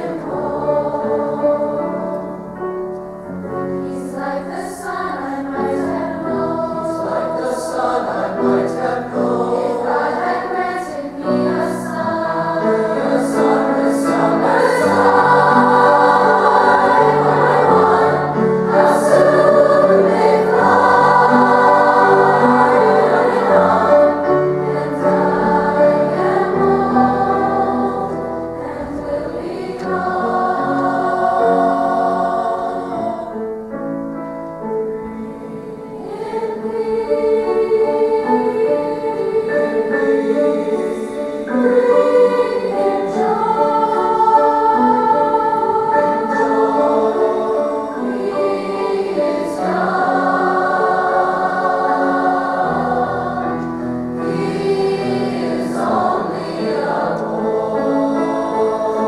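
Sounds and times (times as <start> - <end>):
youth choir singing: 0.0 - 2.7, 3.4 - 33.8, 34.6 - 59.0
grand piano accompaniment: 0.0 - 59.0.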